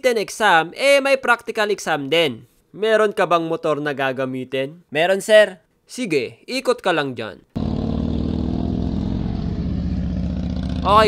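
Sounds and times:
motorcycle engine running: 7.6 - 11.0.

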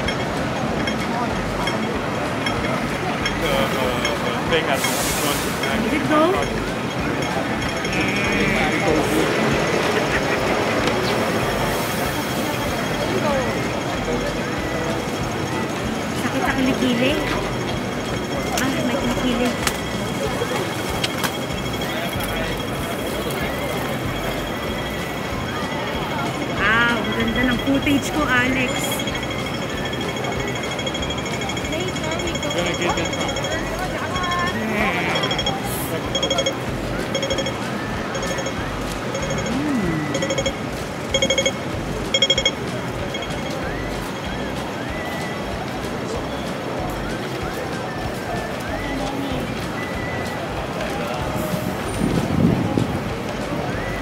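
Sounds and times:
short electronic beeps: 0.0 - 51.8
crowd chatter: 0.0 - 54.0
traffic: 0.0 - 54.0.

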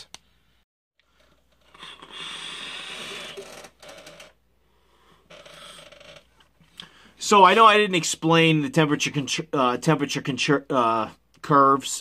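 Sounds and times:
breathy exhaling: 1.1 - 3.5.

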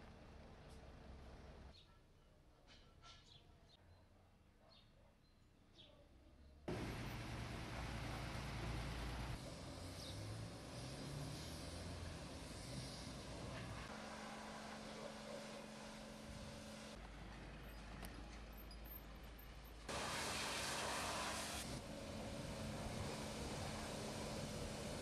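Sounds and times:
pressure washer spraying: 19.9 - 21.8.

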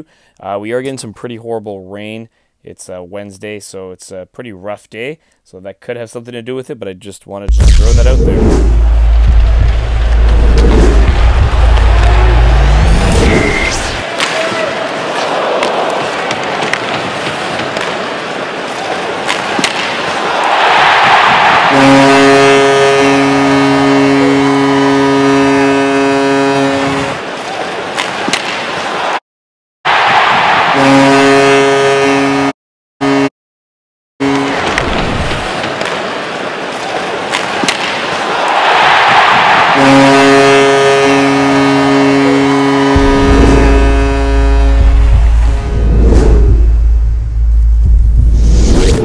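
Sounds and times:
deep heavy bass sound: 7.5 - 14.0, 42.8 - 49.0
goal horn blasts: 7.6 - 14.0, 21.6 - 27.2, 29.9 - 33.3, 34.2 - 34.8, 39.7 - 45.8
crowd cheering: 8.7 - 29.2, 29.9 - 32.5, 34.3 - 45.8.

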